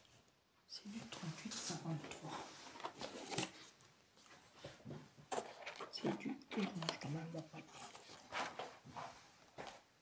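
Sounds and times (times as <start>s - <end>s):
cardboard box rustling: 2.6s - 3.8s.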